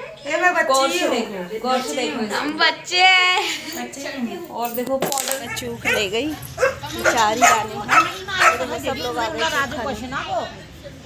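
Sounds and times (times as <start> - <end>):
people's voices: 0.0 - 11.0
dog barking: 5.5 - 8.8.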